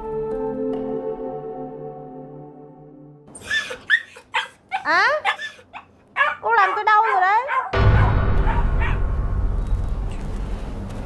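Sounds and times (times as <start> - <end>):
small dog barking and whining: 3.4 - 7.8.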